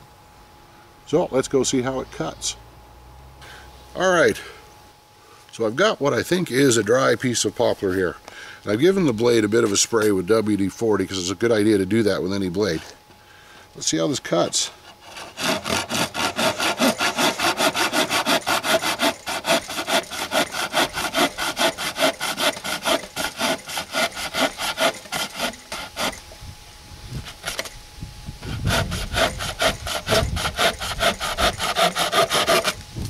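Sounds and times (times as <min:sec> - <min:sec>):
hand saw cutting branch: 0:14.2 - 0:26.4, 0:27.2 - 0:27.8, 0:28.4 - 0:32.9.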